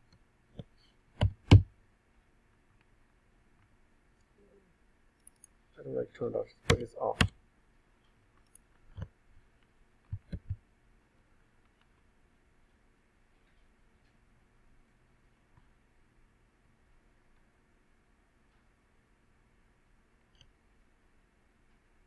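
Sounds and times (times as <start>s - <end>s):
keyboard and mouse clicks: 0.1s - 1.7s, 5.2s - 5.6s, 6.6s - 7.4s, 10.1s - 10.6s, 20.3s - 20.6s.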